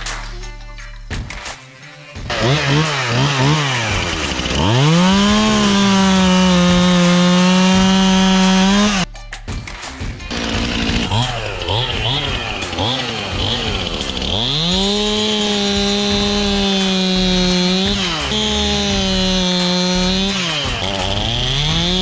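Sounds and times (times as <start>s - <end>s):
chainsaw revving and cutting wood: 2.3s - 9.1s, 10.3s - 22.0s.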